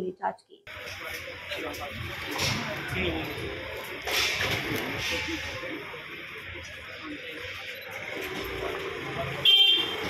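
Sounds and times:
murmur of voices: 0.0s - 10.0s
street noise: 0.0s - 10.0s
vehicle horn honk: 9.4s - 10.0s.

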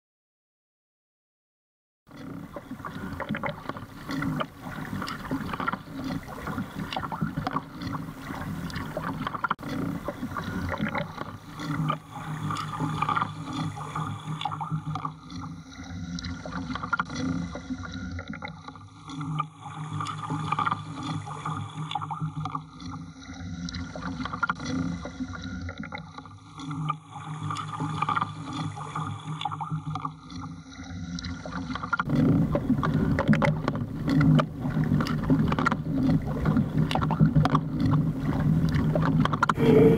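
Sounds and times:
water lapping against kayak hull: 2.1s - 39.9s
low hum: 39.5s - 39.9s.

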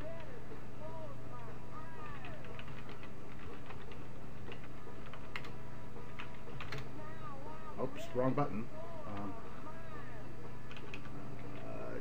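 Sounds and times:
keyboard typing clicks: 2.2s - 5.5s, 6.2s - 6.9s, 10.7s - 11.6s.

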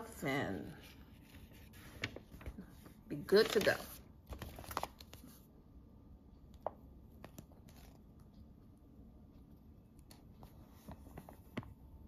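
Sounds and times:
brochure pages rustling: 0.2s - 5.5s, 7.2s - 8.4s, 10.0s - 11.8s.

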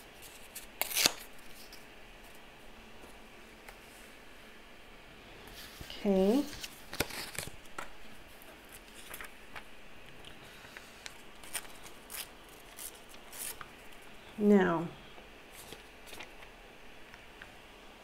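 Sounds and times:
paper tearing and crackling: 0.2s - 1.8s, 6.5s - 7.6s, 11.4s - 13.7s.

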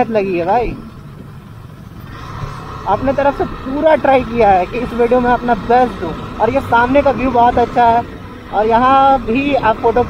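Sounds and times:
motorcycle running: 0.0s - 10.0s
wind and road noise: 0.0s - 10.0s.

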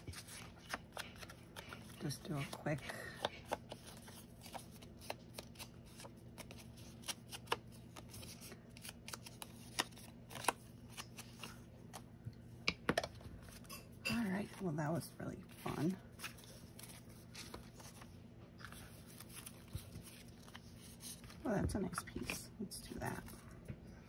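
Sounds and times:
paper rustling: 0.0s - 11.6s, 15.4s - 21.5s.

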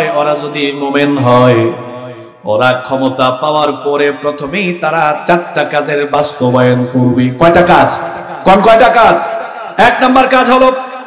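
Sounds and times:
man preaching in chanted delivery: 0.0s - 11.0s.

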